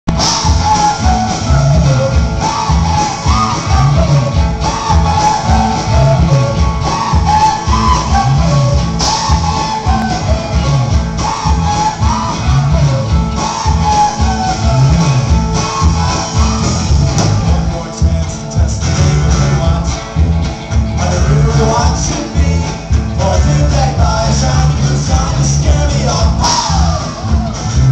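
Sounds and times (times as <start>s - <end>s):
live rock band playing: 0.1s - 27.9s
man singing: 16.1s - 20.3s, 20.9s - 27.9s.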